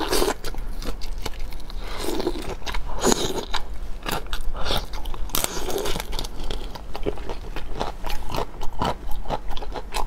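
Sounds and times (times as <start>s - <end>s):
biting and chewing shrimp: 0.0s - 10.0s.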